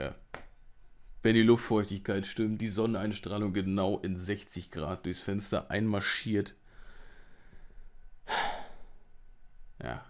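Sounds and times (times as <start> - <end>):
man sighing: 8.3 - 9.0.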